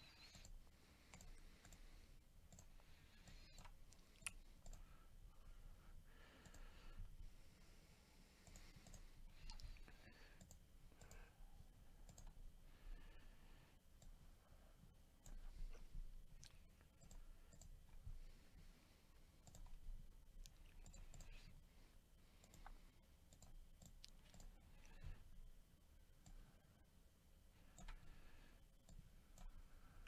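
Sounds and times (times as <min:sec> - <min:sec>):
faint mouse clicks: 0:00.0 - 0:04.9, 0:06.3 - 0:06.9, 0:08.4 - 0:11.3, 0:12.0 - 0:12.4, 0:15.2 - 0:15.8, 0:16.4 - 0:18.0, 0:19.4 - 0:19.8, 0:20.4 - 0:21.6, 0:22.4 - 0:25.3, 0:26.2 - 0:26.6, 0:27.6 - 0:29.7.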